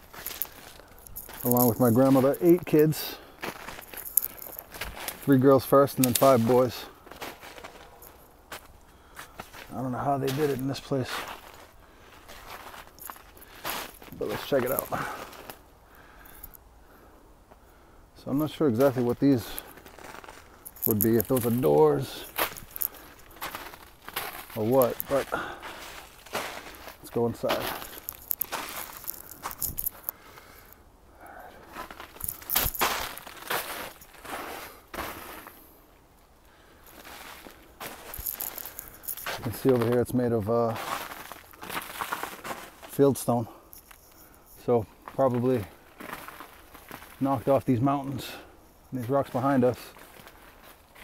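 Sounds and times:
footsteps on snow: 0.0s - 16.2s, 18.2s - 30.7s, 31.3s - 35.9s, 36.7s - 51.0s.

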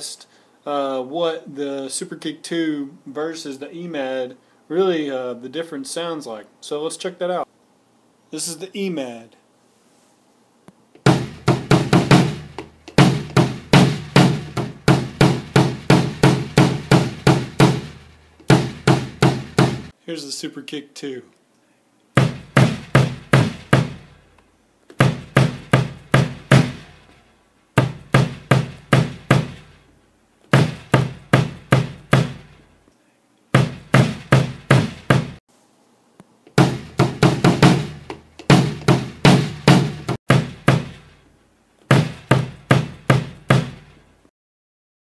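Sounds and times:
bass drum kicks: 11.1s - 19.9s, 22.2s - 24.1s, 25.0s - 26.9s, 27.8s - 29.8s, 30.5s - 32.6s, 33.6s - 35.4s, 36.6s - 41.1s, 41.9s - 43.9s.

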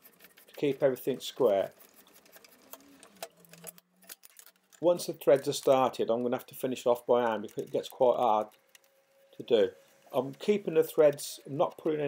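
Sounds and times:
thread tap clicking and creaking: 7.2s - 9.2s.

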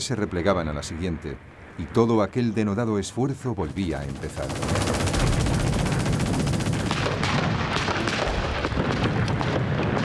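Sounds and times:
low rumble of battle: 3.6s - 10.0s
machine-gun fire: 3.6s - 10.0s
scattered gunshots: 3.6s - 10.0s.

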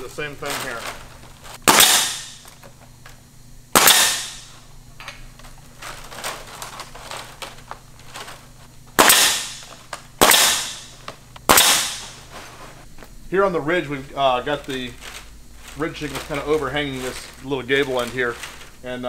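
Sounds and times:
nail gun bang: 1.6s - 2.4s, 3.7s - 4.5s, 9.0s - 10.9s, 11.5s - 12.2s.

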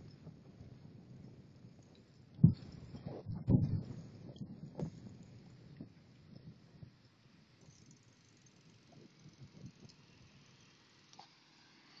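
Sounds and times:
soft low thumps: 2.4s - 7.0s.

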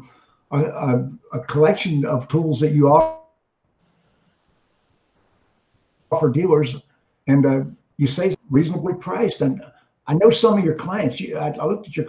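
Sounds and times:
person speaking: 6.1s - 12.0s.

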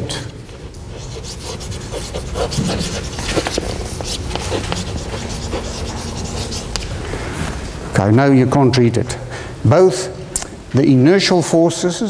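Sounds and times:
chalk scratching on chalkboard: 0.5s - 6.8s.

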